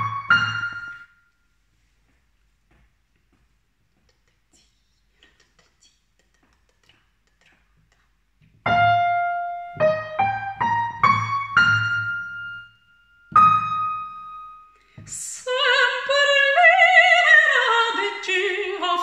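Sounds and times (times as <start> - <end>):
piano single notes: 0.0 - 1.3, 8.6 - 14.8.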